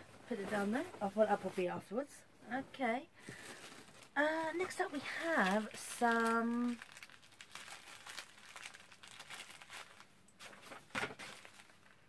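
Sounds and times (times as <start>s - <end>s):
packaging crinkling: 3.2s - 12.0s.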